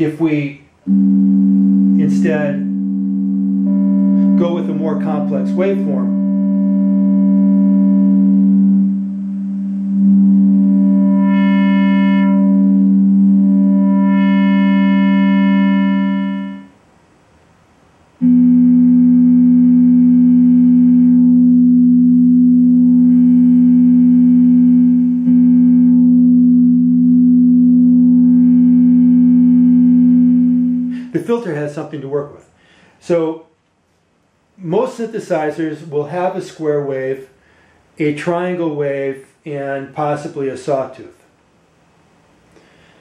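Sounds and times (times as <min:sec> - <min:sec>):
synthesizer note with filter sweeps: 0:00.0 - 0:16.8, 0:18.2 - 0:31.6.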